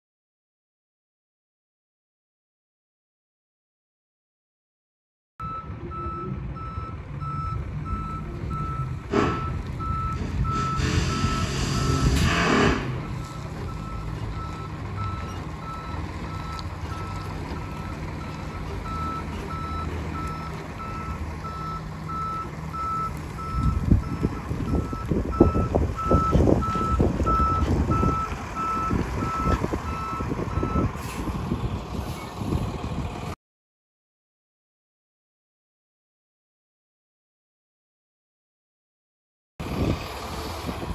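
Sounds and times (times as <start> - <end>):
truck reverse alarm beeping: 5.4 - 31.1
truck engine running: 5.4 - 33.4, 39.6 - 40.9
uneven low rumbling: 5.4 - 33.4
brief rushing burst: 10.5 - 13.1.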